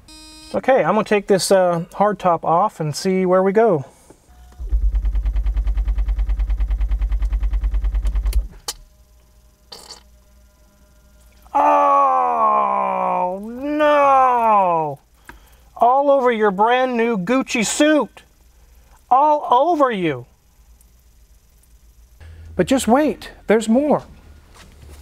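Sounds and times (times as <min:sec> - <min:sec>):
hydraulic pump pulsing hum: 0:04.2 - 0:11.6, 0:20.3 - 0:25.0
groan-like sounds falling in pitch: 0:11.4 - 0:15.0.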